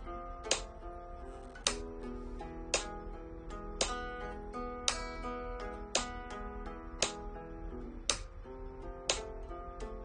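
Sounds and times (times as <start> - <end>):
flamenco guitar arpeggio: 0.0 - 10.0
metronome clicks: 0.0 - 10.0.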